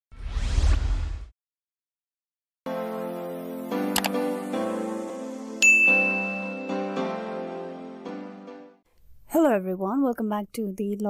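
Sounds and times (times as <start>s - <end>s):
whoosh with low rumble: 0.1s - 1.3s.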